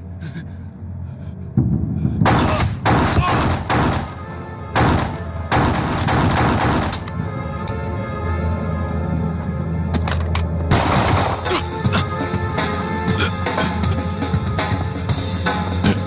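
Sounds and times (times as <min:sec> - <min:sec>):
dramatic background music: 0:01.6 - 0:16.0.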